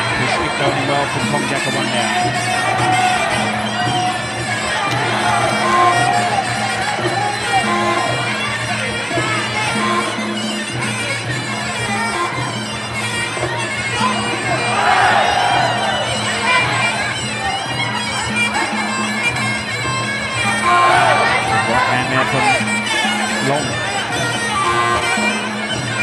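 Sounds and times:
steady drum beat: 0:00.0 - 0:08.4
crowd noise: 0:00.0 - 0:26.0
reedy oboe melody: 0:00.0 - 0:26.0.

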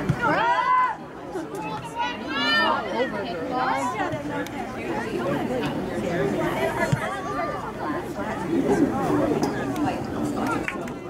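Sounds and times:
voices talking and calling out: 0:00.0 - 0:11.0.

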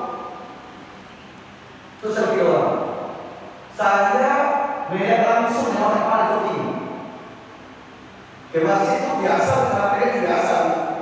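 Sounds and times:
faint room tone hiss: 0:00.0 - 0:11.0
man's voice reverberating: 0:02.0 - 0:07.0, 0:08.5 - 0:11.0.

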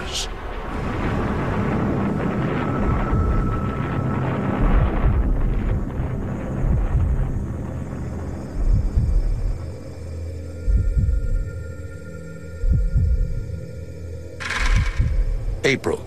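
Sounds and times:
low steady drone: 0:00.0 - 0:16.0
heartbeat-like double thump: 0:00.6 - 0:09.7, 0:10.6 - 0:11.5, 0:12.6 - 0:13.5, 0:14.4 - 0:15.6.

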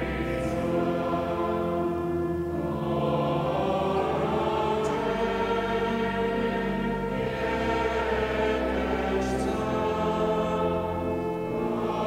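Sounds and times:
choir singing a chant: 0:00.0 - 0:12.0
pipe organ chords: 0:00.0 - 0:12.0.

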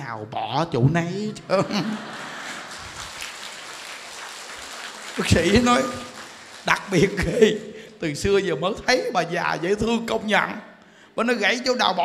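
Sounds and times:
women laughing: 0:01.4 - 0:03.1
audience clapping: 0:01.7 - 0:07.8.

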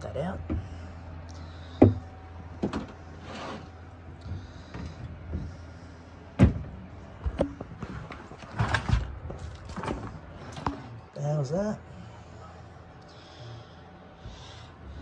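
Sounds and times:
low steady hum: 0:00.0 - 0:15.0
knocks and clatter of glass enclosure: 0:06.4 - 0:07.7.

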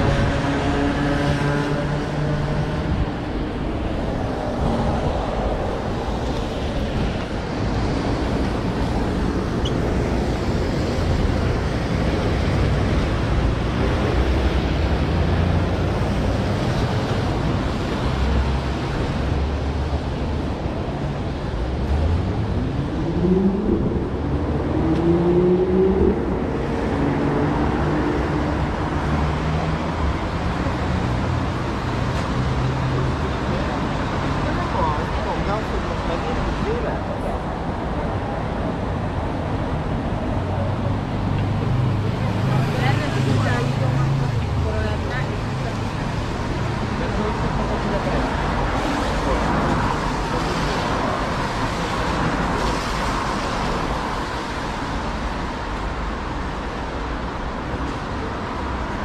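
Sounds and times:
tyres hissing on wet road: 0:41.8 - 0:59.0.

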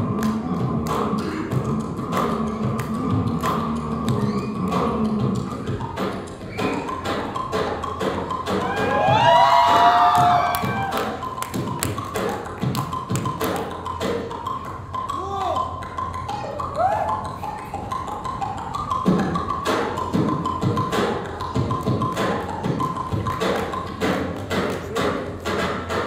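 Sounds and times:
vocal sweeps: 0:00.0 - 0:07.5
beatboxing through microphone: 0:00.0 - 0:26.0.

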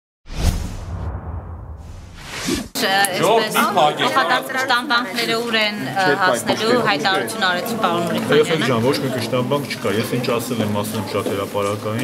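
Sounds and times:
whoosh with deep rumble: 0:00.3 - 0:02.8.

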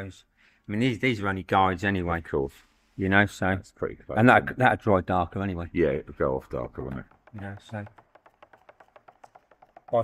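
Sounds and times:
stick tapping inside a metal tin: 0:06.8 - 0:10.0.

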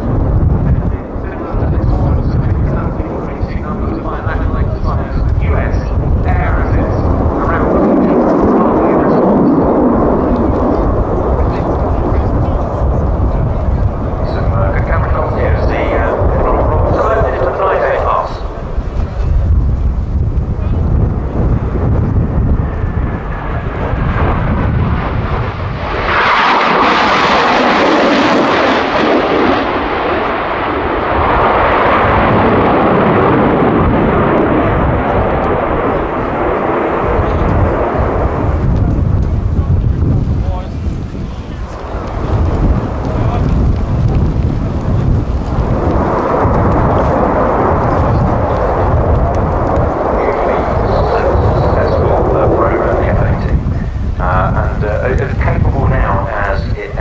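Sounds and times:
fighter jet roar overhead: 0:00.0 - 0:57.0.

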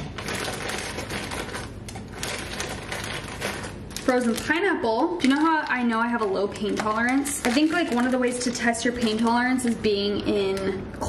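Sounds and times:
plastic bag crinkling: 0:00.0 - 0:10.2
frozen pieces clicking: 0:00.2 - 0:09.8.

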